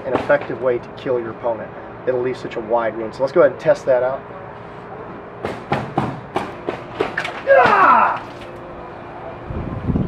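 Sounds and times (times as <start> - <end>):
man shouting: 7.4 - 8.4.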